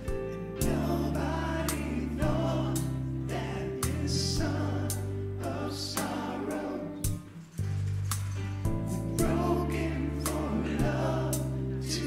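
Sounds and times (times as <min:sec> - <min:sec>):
electronic keyboard chords: 0:00.0 - 0:12.0
voices singing along: 0:00.6 - 0:07.3, 0:08.9 - 0:12.0.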